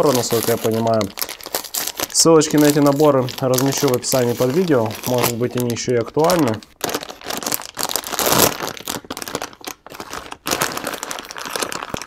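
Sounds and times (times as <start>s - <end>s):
foil and plastic packaging crinkling: 0.0s - 12.0s.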